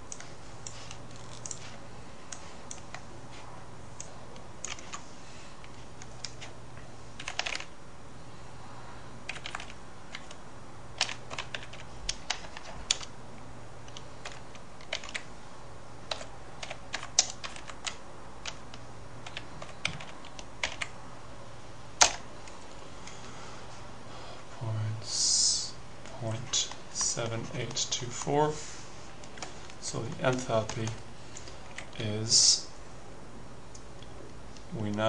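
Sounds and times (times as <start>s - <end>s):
faint low hum: 0.0s - 35.0s.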